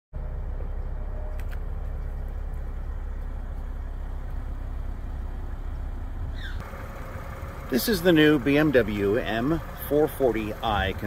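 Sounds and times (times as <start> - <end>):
car engine idling: 0.2 - 11.0.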